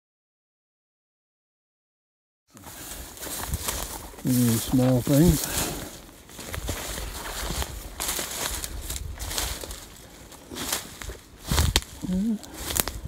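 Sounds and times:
brush rustling: 2.5 - 13.0
footsteps through dry grass and leaves: 2.5 - 13.0.

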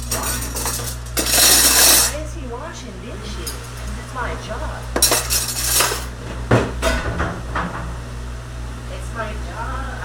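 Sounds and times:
dishes and cutlery clattering: 0.0 - 2.2, 5.0 - 7.9
sharp knocks: 6.3 - 8.1.

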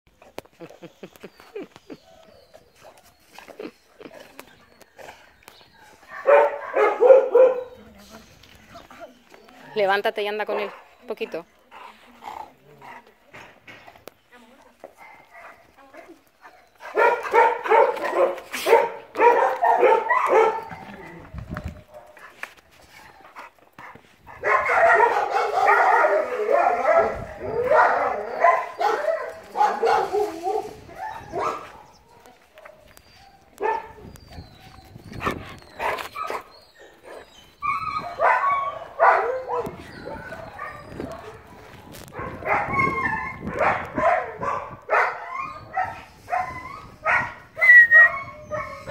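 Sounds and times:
dog barking: 6.1 - 7.8, 16.9 - 20.8, 24.4 - 31.8, 33.6 - 34.0, 38.2 - 41.3, 42.2 - 47.4.

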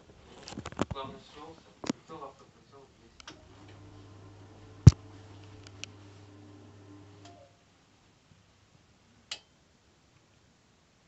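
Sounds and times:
low electric motor hum: 3.2 - 7.5.

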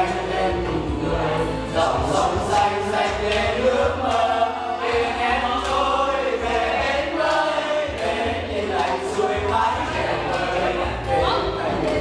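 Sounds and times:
group of people singing: 0.0 - 12.0.

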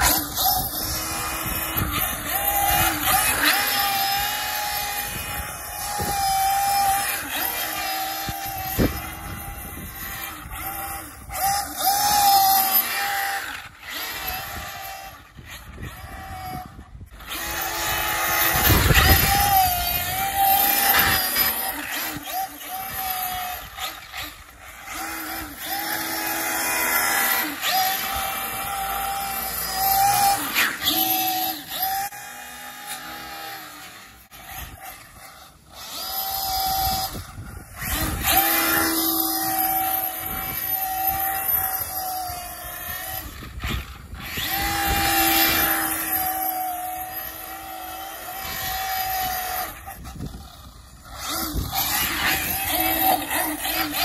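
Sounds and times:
electric rc car motor whine: 0.0 - 54.0.

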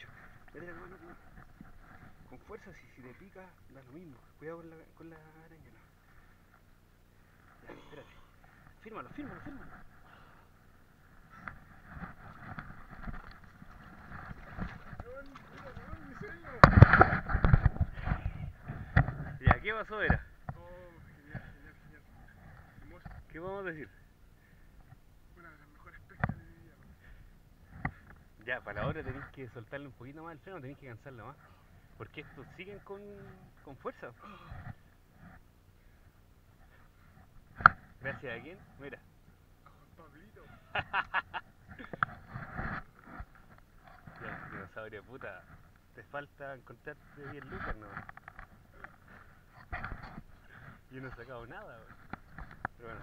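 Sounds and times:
microphone handling rubbing: 0.0 - 4.3, 5.1 - 24.0, 25.6 - 30.4, 34.4 - 39.0, 40.6 - 53.0
knocks and scrapes: 11.2 - 20.6, 41.7 - 45.7, 47.0 - 53.0.

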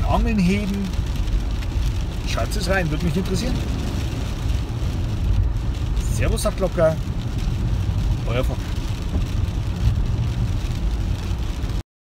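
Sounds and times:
road and tyre rumble in car: 0.0 - 11.8.

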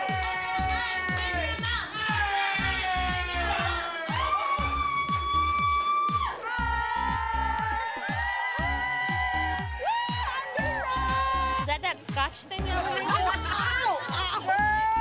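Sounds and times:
pop dance music: 0.0 - 15.0.

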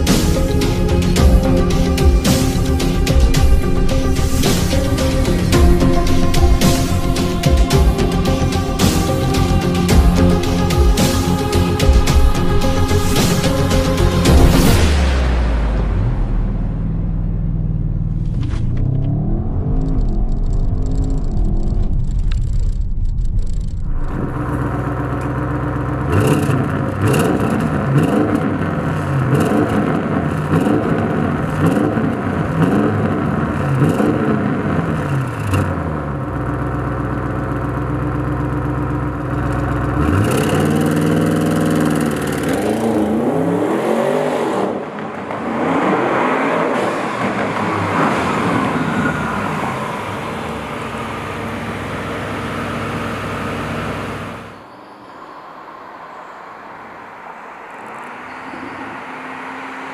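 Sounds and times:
car engine revving: 0.0 - 54.8
exhaust crackles: 2.4 - 54.7.

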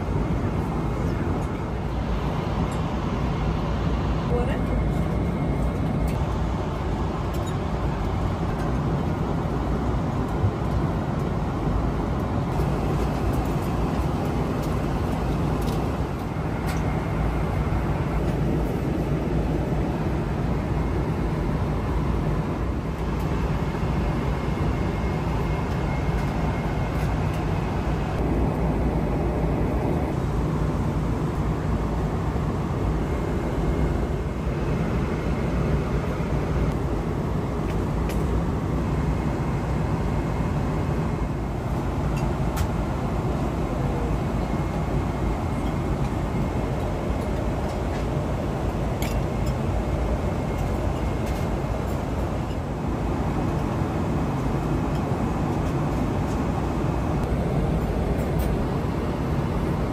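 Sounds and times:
airplane cabin engine rush: 0.0 - 59.9.

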